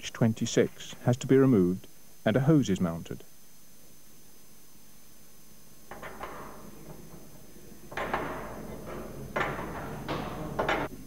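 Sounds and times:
metallic knocks and clanks: 0:05.9 - 0:11.0.

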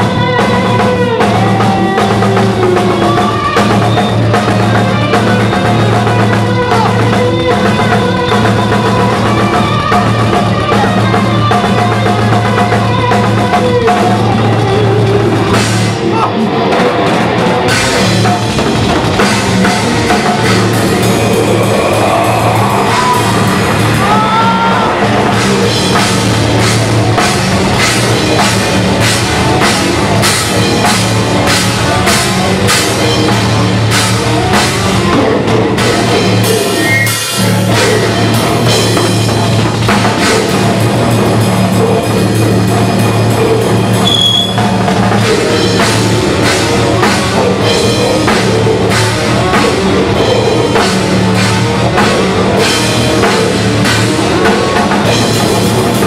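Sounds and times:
low distorted guitars: 0:00.0 - 0:56.0
metal band playing live: 0:00.0 - 0:56.0
pounding drums: 0:00.0 - 0:56.0.

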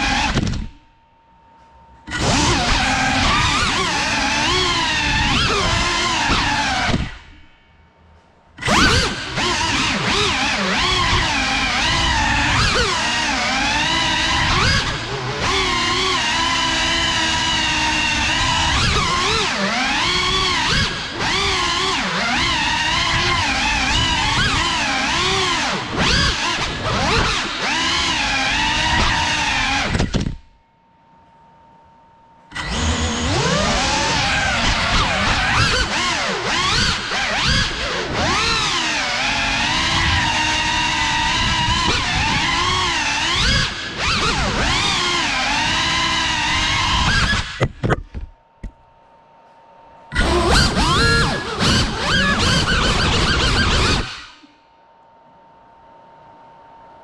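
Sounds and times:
drone motors whining: 0:00.0 - 0:07.6, 0:08.6 - 0:30.4, 0:32.5 - 0:48.8, 0:50.1 - 0:54.6.

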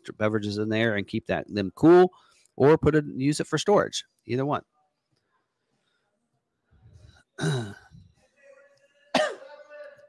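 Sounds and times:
man coughing: 0:07.4 - 0:08.0, 0:09.1 - 0:09.6.

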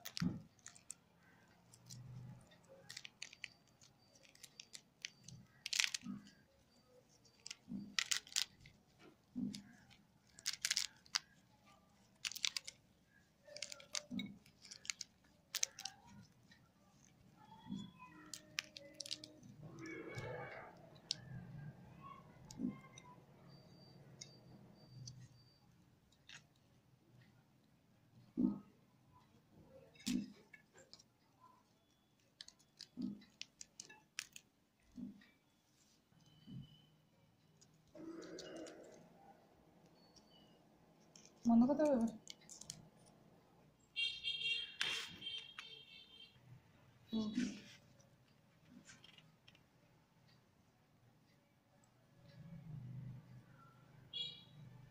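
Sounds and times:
crisp crackles and snaps: 0:00.0 - 0:21.4, 0:29.9 - 0:35.1, 0:37.6 - 0:39.2, 0:41.0 - 0:43.2, 0:47.3 - 0:49.7
fruit rind cracking and tearing: 0:00.0 - 0:21.4, 0:31.9 - 0:34.4, 0:37.8 - 0:39.1, 0:42.1 - 0:43.2.

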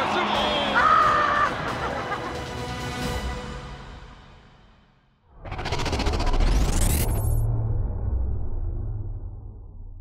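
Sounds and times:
fluttering whoosh: 0:05.4 - 0:09.0
deep low rumble: 0:05.4 - 0:10.0.

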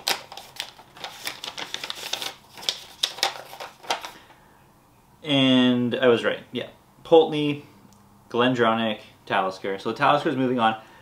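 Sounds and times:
paper rustling and crackling: 0:00.0 - 0:04.2.

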